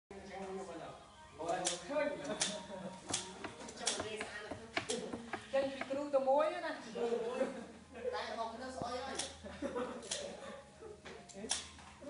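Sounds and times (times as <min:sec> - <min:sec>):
sharp rhythmic clicks: 0:01.5 - 0:06.0, 0:09.1 - 0:09.4, 0:11.5 - 0:11.8.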